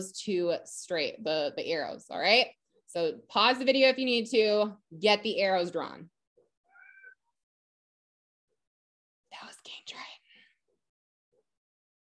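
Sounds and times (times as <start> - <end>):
person whispering: 9.3 - 10.4.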